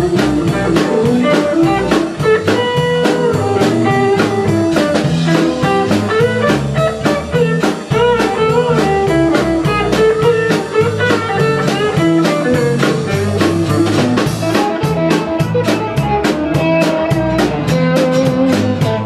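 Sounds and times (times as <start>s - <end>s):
country band playing: 0.0s - 19.0s
lead electric guitar melody: 0.0s - 19.0s.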